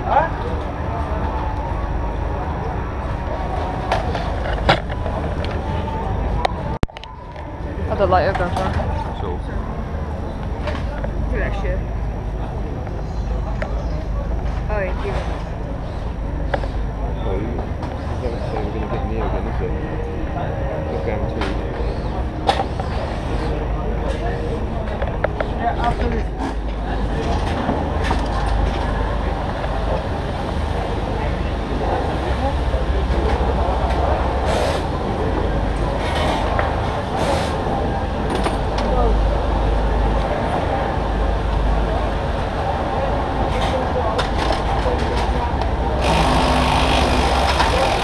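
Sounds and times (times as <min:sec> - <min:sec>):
indistinct chatter: 0:00.0 - 0:48.0
steady low hum: 0:00.0 - 0:48.0
steady low rumble: 0:00.0 - 0:48.0.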